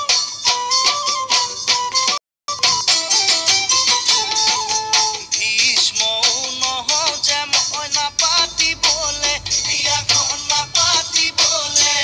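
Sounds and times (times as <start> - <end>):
fast percussion beat: 2.6 - 12.0
person singing a melody: 4.3 - 12.0.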